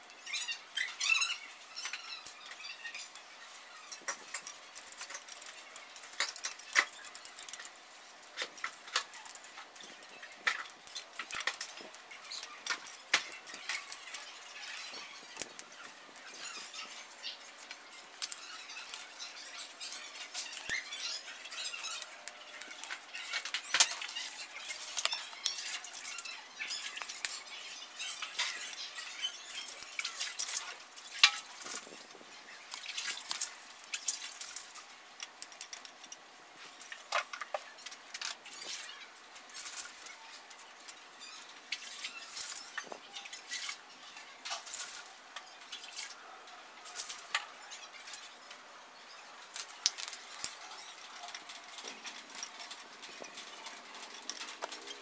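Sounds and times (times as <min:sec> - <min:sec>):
charcoal crackling: 0:00.0 - 0:55.0.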